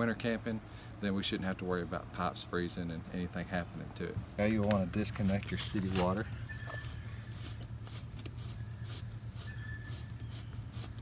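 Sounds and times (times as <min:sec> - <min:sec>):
bird note: 0:06.2 - 0:07.8.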